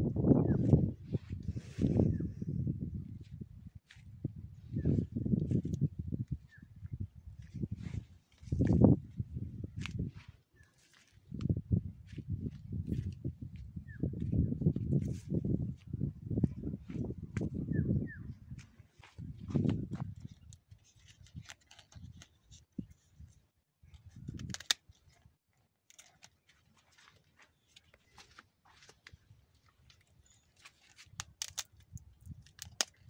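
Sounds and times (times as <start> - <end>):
wind buffeting microphone: 0.0 - 10.4, 11.2 - 20.6, 23.9 - 24.6.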